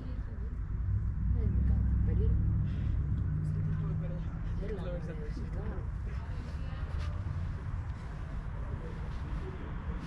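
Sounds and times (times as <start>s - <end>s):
low rumble and hum: 0.0s - 9.6s.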